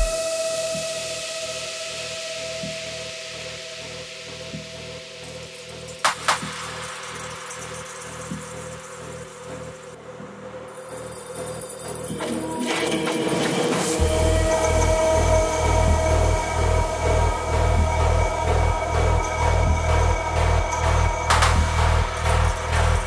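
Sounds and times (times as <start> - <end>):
hiss: 0.0 - 9.9.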